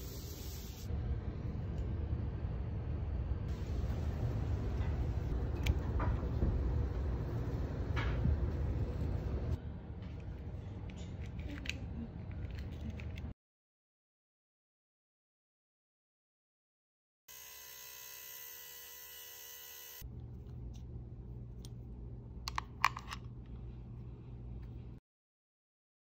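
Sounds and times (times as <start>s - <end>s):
low rumble: 0.9s - 11.1s
low hum: 0.9s - 13.3s.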